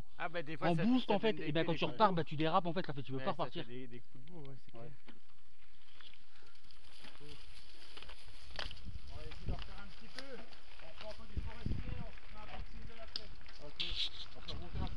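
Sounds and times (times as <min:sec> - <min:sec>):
bike clicks and rattles: 0:05.0 - 0:13.8
bike tyres rumbling on dirt: 0:05.2 - 0:13.8
indistinct voices talking: 0:09.0 - 0:14.9
wind on microphone: 0:11.2 - 0:12.9, 0:13.8 - 0:14.9.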